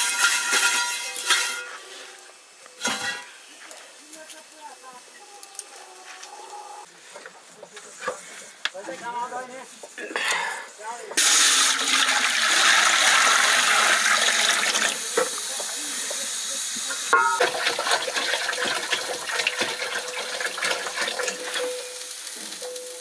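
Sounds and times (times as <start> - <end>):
metal dish clanging: 0.0 - 1.8, 17.1 - 17.9
pots and dishes clinking: 0.0 - 3.4, 15.1 - 16.2, 16.9 - 23.0
water pouring into metal pot: 11.2 - 16.5, 17.1 - 22.7.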